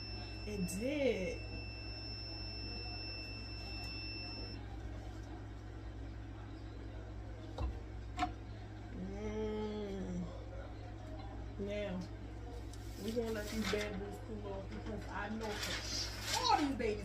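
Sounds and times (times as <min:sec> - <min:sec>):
heat press timer beep: 0:00.0 - 0:04.6
steady low hum: 0:00.0 - 0:16.2.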